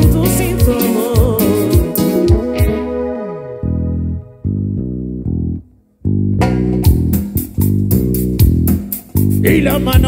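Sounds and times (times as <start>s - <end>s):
drums in a steady beat: 0.0s - 2.8s, 6.4s - 10.0s
live band playing: 0.0s - 5.0s, 6.4s - 10.0s
electric bass line: 0.0s - 10.0s.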